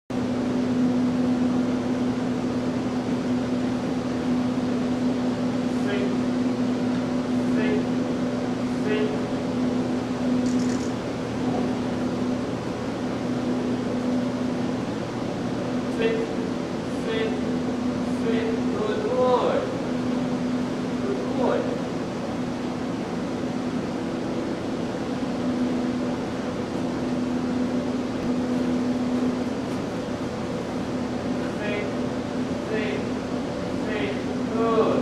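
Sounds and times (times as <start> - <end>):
steady mechanical hum: 0.1 - 35.0.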